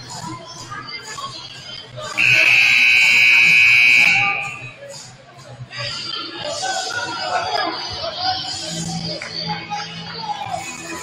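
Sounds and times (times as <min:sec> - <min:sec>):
crowd chatter: 0:00.0 - 0:11.0
scoreboard horn blast: 0:02.2 - 0:04.6.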